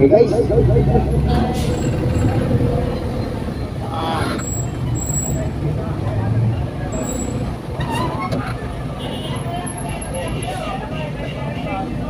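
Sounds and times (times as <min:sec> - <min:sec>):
motorcycle engines running: 0:00.0 - 0:07.8.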